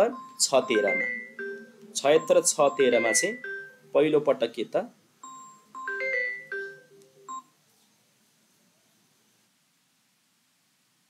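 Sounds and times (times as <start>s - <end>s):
short electronic beep: 0.0s - 3.8s
chime-like tones: 0.0s - 3.9s, 5.2s - 7.4s.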